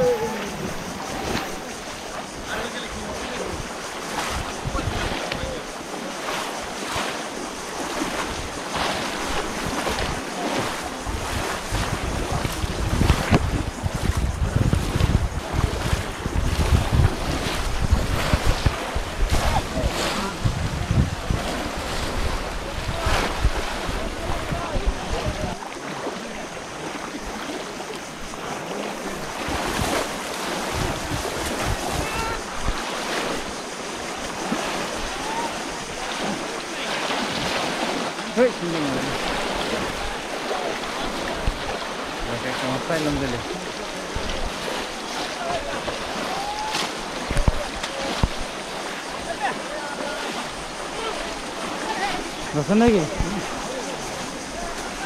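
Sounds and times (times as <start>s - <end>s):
wind rumbling on microphone: 0.0s - 25.7s, 26.3s - 38.1s, 39.0s - 49.3s
muddy water splashing: 0.0s - 55.0s.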